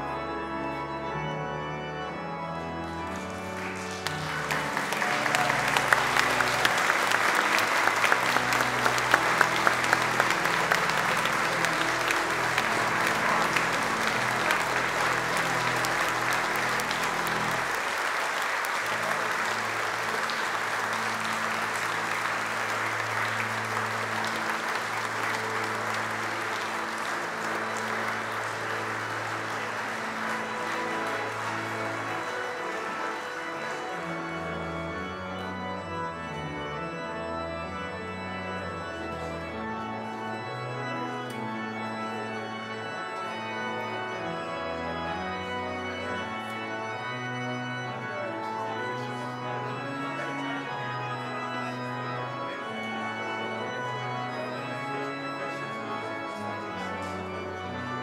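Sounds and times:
congregation applauding: 0.0s - 58.0s
pipe organ chords: 0.0s - 58.0s.

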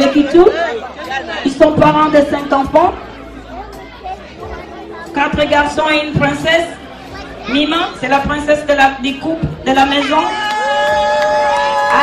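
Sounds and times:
guests chattering: 0.0s - 12.0s.

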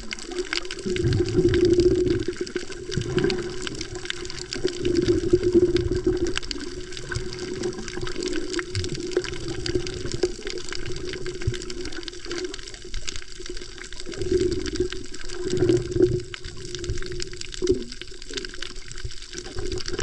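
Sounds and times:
faint underwater clicks: 0.0s - 20.0s
underwater water rushing: 0.0s - 20.0s.

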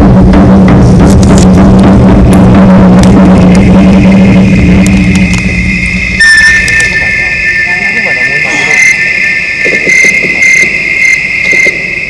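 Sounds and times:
high insect chirp: 4.3s - 12.0s
insects trilling: 4.5s - 12.0s.

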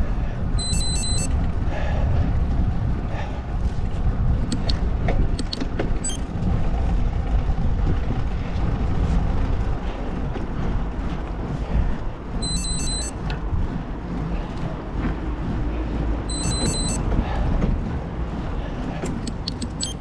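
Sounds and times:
wind and road noise: 0.0s - 20.0s
high electronic beeps: 0.6s - 1.3s, 12.4s - 13.2s, 16.3s - 17.0s, 19.6s - 20.0s
sharp clicks: 4.5s - 6.2s, 19.0s - 20.0s.

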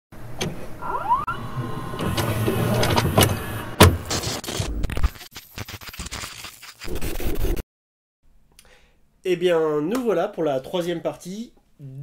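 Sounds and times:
short rising whines: 0.7s - 3.8s.

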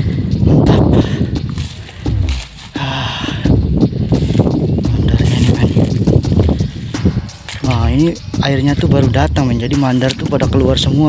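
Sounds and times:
footsteps wading through mud: 1.4s - 7.7s.

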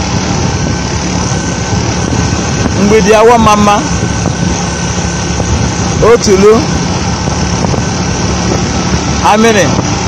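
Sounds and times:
vehicle engine and road noise: 0.0s - 10.0s.

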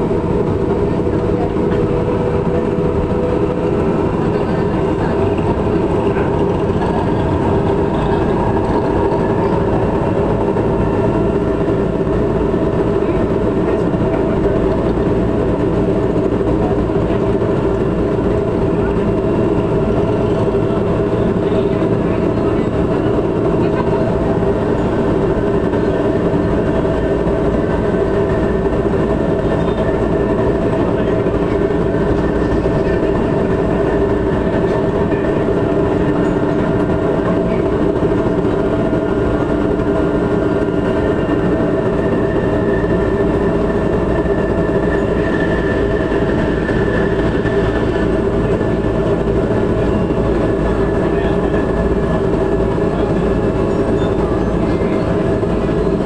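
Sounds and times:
train running on track: 0.0s - 56.0s.

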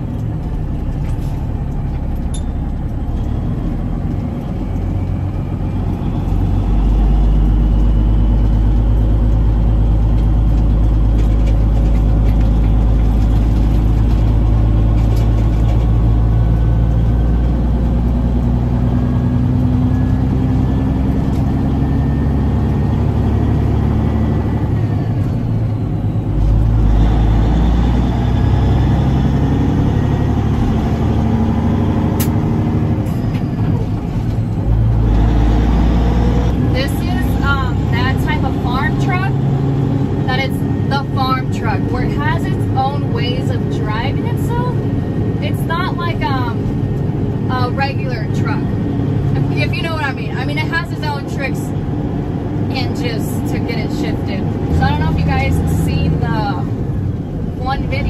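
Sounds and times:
truck diesel engine rumble: 0.0s - 58.0s.

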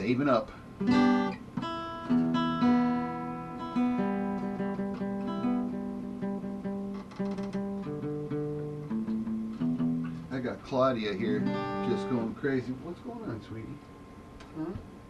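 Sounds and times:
acoustic guitar playing: 0.0s - 12.8s.

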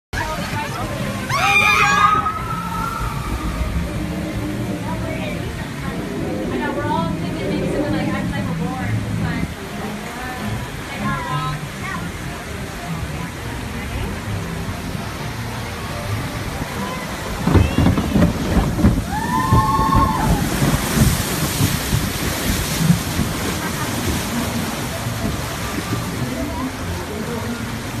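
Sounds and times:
boat sloshing through water channel: 0.2s - 28.0s
water splash and spray hissing: 0.2s - 28.0s.

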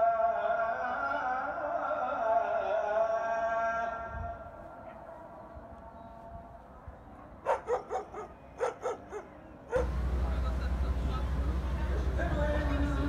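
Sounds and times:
dog barking: 7.2s - 10.0s.

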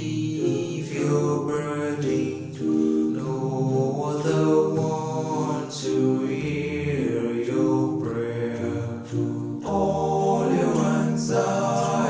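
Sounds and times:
male a cappella harmony singing: 0.0s - 12.0s.

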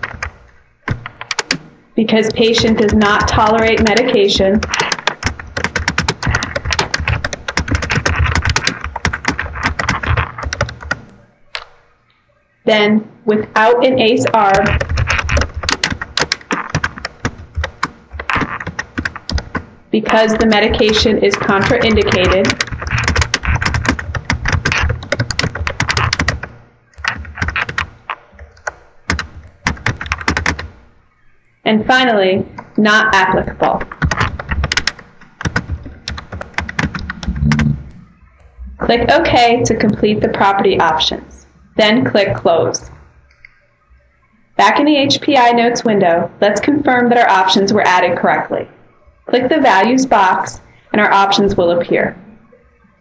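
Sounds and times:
typing on computer keyboard: 0.0s - 11.8s, 13.9s - 30.8s, 32.5s - 37.8s.

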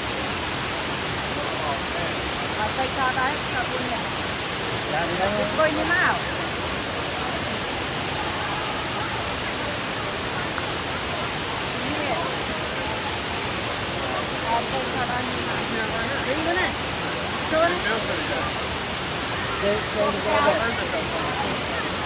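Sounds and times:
waterfall pouring: 0.0s - 22.0s.

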